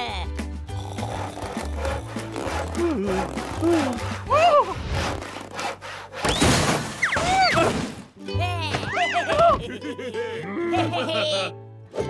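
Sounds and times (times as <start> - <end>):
cartoon grumble: 0.7 - 4.8
rasping sawing noise: 0.7 - 6.4.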